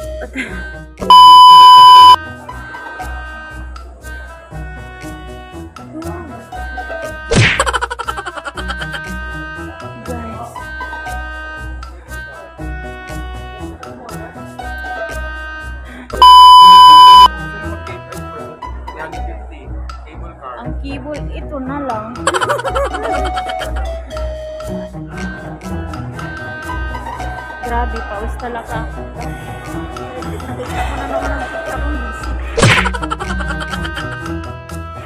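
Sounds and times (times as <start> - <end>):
background music: 0.0 - 35.0
high-pitched test-tone beep: 1.1 - 2.2, 16.2 - 17.3.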